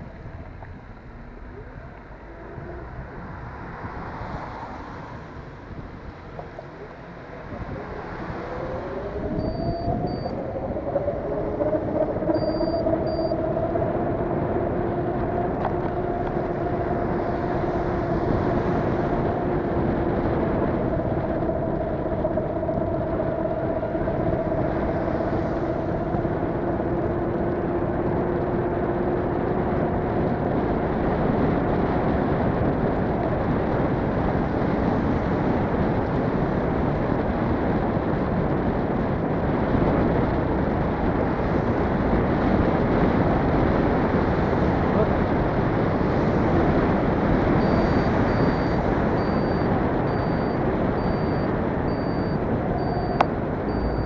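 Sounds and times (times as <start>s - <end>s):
tyre noise on wet road: 0.0s - 13.0s
car engine hum: 0.0s - 54.0s
short double beeps: 9.3s - 10.4s, 12.3s - 13.4s, 47.6s - 54.0s.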